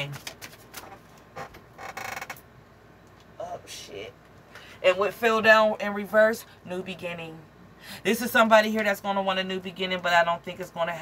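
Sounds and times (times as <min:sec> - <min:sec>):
cards shuffling clicks: 0:00.0 - 0:01.1.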